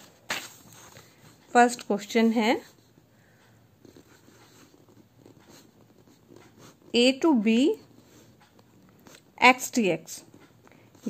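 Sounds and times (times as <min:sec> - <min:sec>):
pen scratching on paper: 0:03.8 - 0:09.4.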